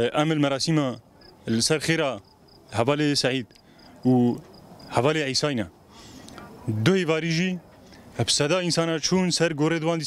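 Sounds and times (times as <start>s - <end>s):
man speaking: 0.0s - 5.7s, 6.7s - 7.6s, 8.2s - 10.0s
pulsing insect chirp: 2.2s - 2.8s.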